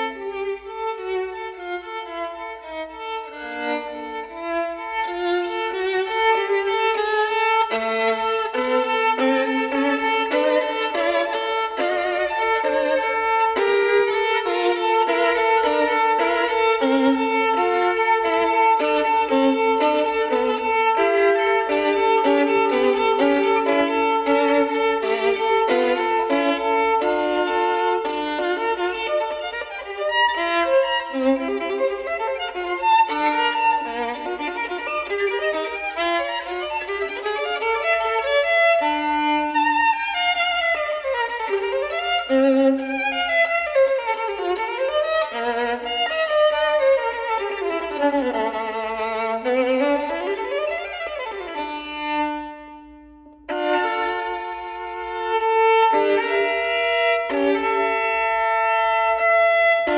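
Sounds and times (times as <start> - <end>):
solo violin bowed: 0.0 - 59.9.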